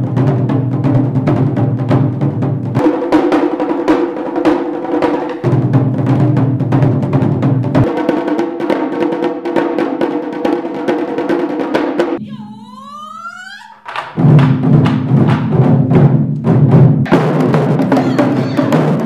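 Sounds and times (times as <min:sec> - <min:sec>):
taiko drumming: 0:00.0 - 0:19.0
sustained pitched tones: 0:12.2 - 0:13.9.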